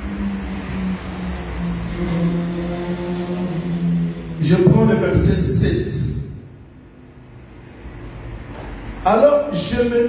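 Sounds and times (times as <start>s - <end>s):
low rumble: 1.4s - 6.9s.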